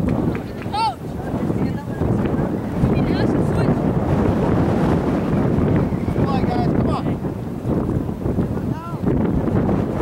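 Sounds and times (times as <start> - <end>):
wind buffeting microphone: 0.0 - 10.0
distant voices calling out: 0.4 - 3.8.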